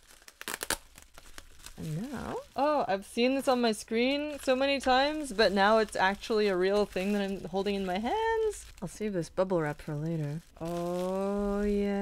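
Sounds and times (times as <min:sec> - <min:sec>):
bubble wrap crinkling: 0:00.0 - 0:12.0.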